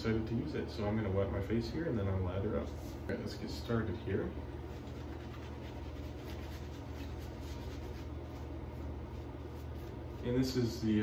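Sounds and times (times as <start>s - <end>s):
steady low hum: 0.0s - 11.0s
shaving brush scratchy brushing: 4.5s - 11.0s.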